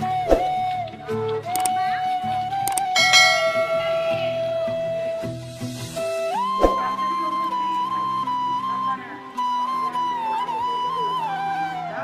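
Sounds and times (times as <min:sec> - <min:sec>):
background music: 0:00.0 - 0:12.0
notification bell chime: 0:03.0 - 0:05.4.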